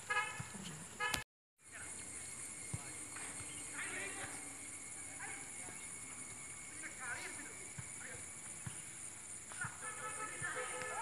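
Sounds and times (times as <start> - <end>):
high-pitched hiss: 1.6 - 11.0.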